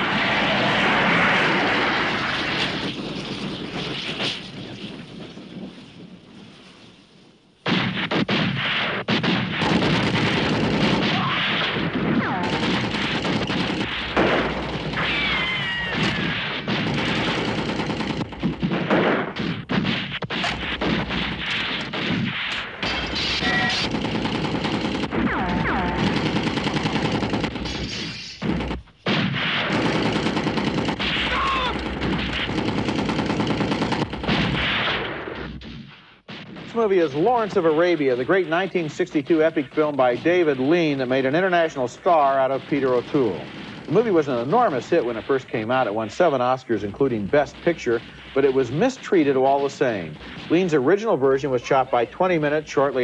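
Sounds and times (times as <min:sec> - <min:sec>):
rifle shots: 0:07.6 - 0:53.0
machine gun fire: 0:07.7 - 0:38.2
short falling whines: 0:14.8 - 0:16.7.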